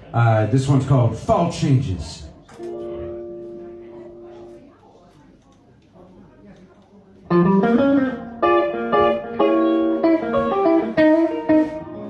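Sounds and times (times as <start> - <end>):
electric guitar ringing: 7.3 - 12.0.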